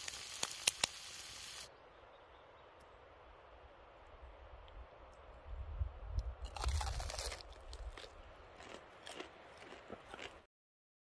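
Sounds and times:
person chewing crusty bread: 0:06.4 - 0:10.5.

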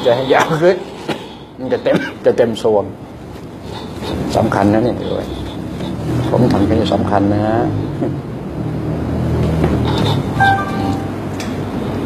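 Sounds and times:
short high tone: 0:10.4 - 0:11.3.

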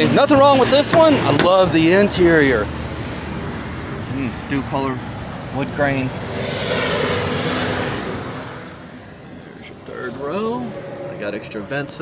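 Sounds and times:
vehicle passing outside: 0:01.9 - 0:12.0.

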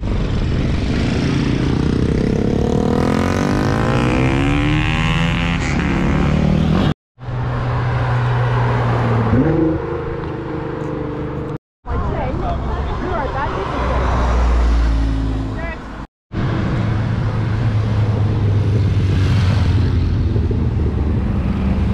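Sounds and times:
motorcycle passing by: 0:00.2 - 0:06.9, 0:16.8 - 0:21.9.

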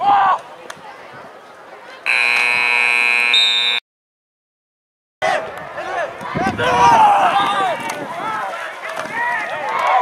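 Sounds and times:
scoreboard horn buzz: 0:02.1 - 0:03.8.

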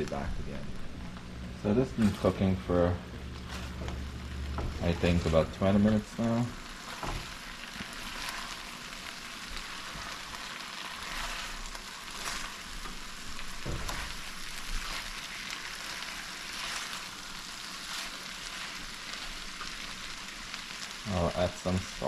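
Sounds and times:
food sizzling in a pan: 0:00.0 - 0:22.0
spatula stirring food: 0:03.2 - 0:21.0.

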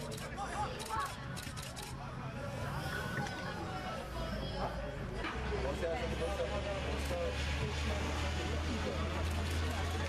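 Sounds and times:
voices calling and talking: 0:00.0 - 0:10.0.

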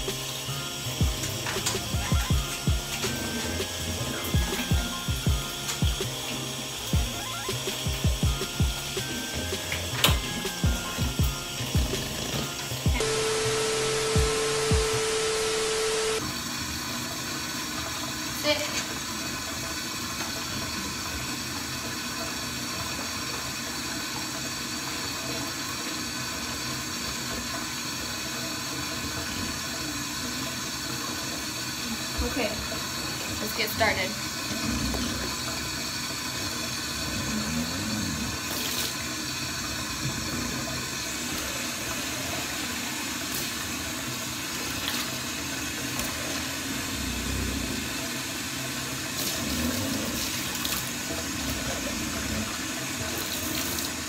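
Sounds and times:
music with steady beat: 0:00.0 - 0:15.6
static hiss: 0:01.2 - 0:16.2
faucet running into bathtub: 0:38.4 - 0:46.9, 0:47.8 - 0:54.0.

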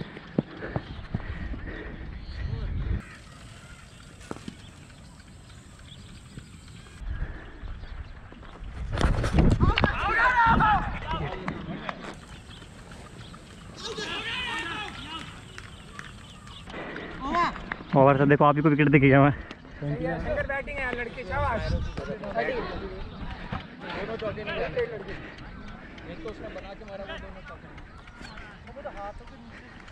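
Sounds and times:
men shouting and calling: 0:09.6 - 0:25.2.

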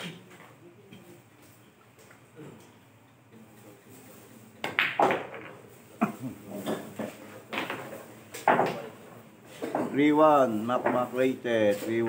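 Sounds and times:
billiard balls clacking: 0:04.6 - 0:12.0.

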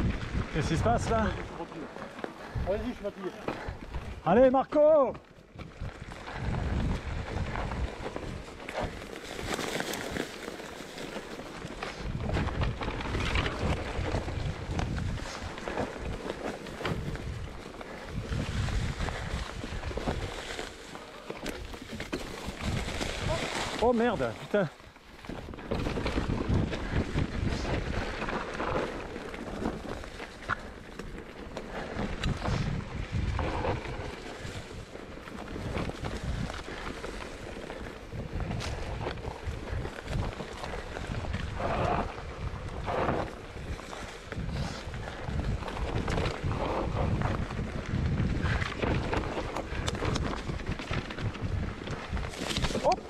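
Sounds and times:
wind buffeting microphone: 0:00.0 - 0:01.7, 0:05.5 - 0:09.6, 0:11.7 - 0:20.6, 0:22.4 - 0:53.0
bike rattling and knocking: 0:00.0 - 0:53.0
mountain bike rumble: 0:00.0 - 0:53.0
tyres crunching through leaves: 0:05.8 - 0:53.0.

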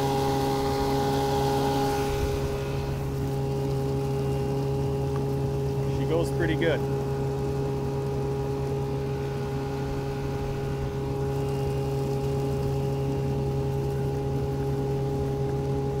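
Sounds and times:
outboard motor droning: 0:00.0 - 0:16.0.

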